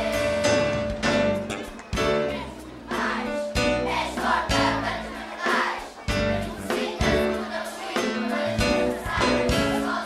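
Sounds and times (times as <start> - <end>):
children's choir singing: 0.0 - 0.7, 1.6 - 10.0.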